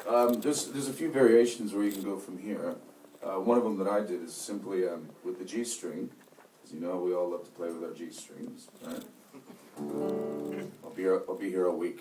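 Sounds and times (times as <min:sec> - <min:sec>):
acoustic guitar chord ringing: 0:09.8 - 0:10.8.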